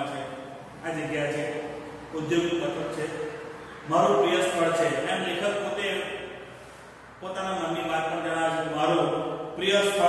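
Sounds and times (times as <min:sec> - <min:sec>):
man reading aloud in chant: 0:00.0 - 0:06.4, 0:07.2 - 0:10.0.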